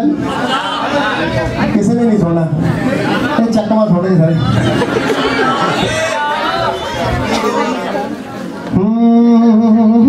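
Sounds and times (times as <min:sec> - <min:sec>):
audience chatter: 0:00.0 - 0:10.0
man talking over pa system: 0:03.4 - 0:04.6.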